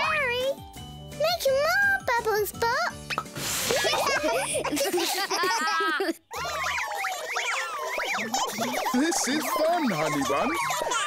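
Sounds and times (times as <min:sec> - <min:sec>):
light children's music: 0:00.0 - 0:11.0
cartoon characters giggling: 0:03.6 - 0:11.0.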